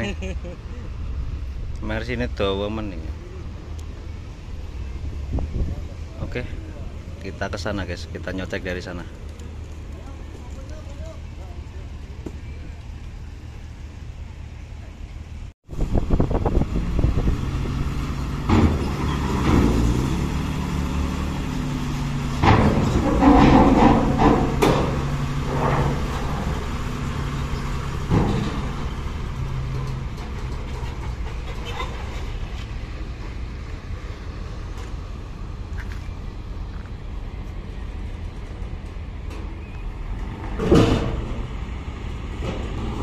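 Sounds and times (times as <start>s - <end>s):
diesel truck engine under load: 0.2s - 43.0s
clanks on steel ramp plates: 22.3s - 26.9s, 27.5s - 32.6s, 40.2s - 41.5s.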